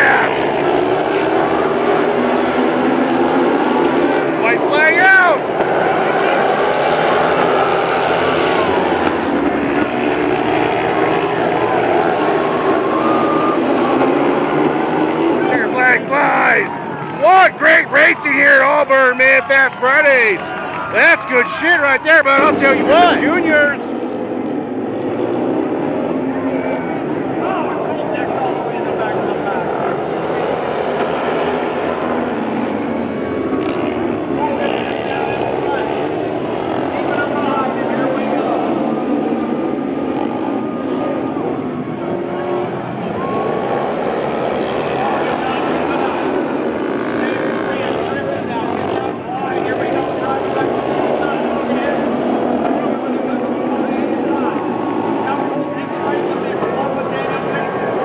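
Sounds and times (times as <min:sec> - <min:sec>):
motorcycles racing: 0:00.0 - 0:58.0.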